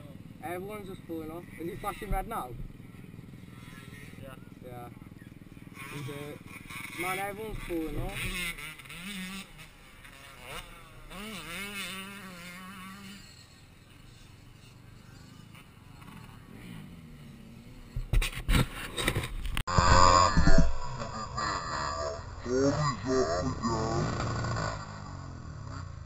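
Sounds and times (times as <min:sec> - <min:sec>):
distant motorbike engines revving: 0:00.0 - 0:26.0
knocks and rustling on microphone: 0:18.0 - 0:19.6.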